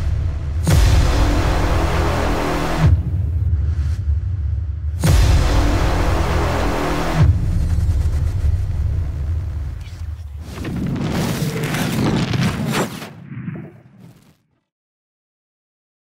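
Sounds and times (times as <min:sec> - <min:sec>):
dramatic soundtrack music: 0:00.0 - 0:10.3
deep rumbling and swishing effects: 0:07.3 - 0:14.3
low boom: 0:10.6 - 0:14.3.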